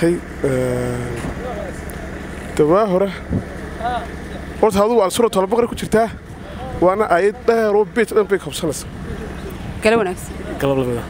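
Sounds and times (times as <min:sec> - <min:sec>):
man speaking: 0:00.0 - 0:01.9, 0:02.5 - 0:09.4, 0:10.4 - 0:11.0
street traffic rumble: 0:00.0 - 0:11.0.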